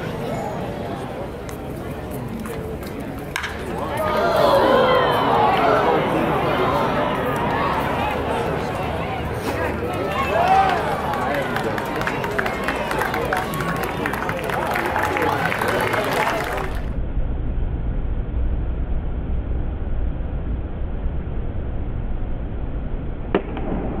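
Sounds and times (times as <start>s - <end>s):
crowd chattering: 0.0s - 17.0s
baseball bat crack: 3.2s - 4.2s, 23.3s - 24.0s
low rumble of ambience: 16.3s - 24.0s.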